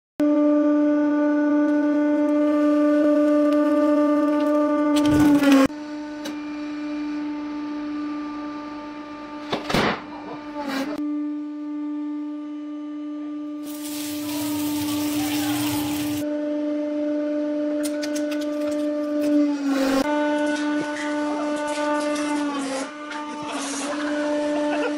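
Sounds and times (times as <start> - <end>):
hydraulic pump humming: 13.6 - 16.2.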